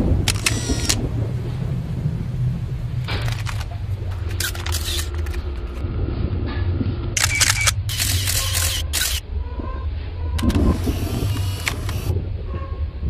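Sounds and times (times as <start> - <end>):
bursts of loud static hiss: 0.0 - 1.3, 10.4 - 12.2
steady low hum: 0.0 - 13.0.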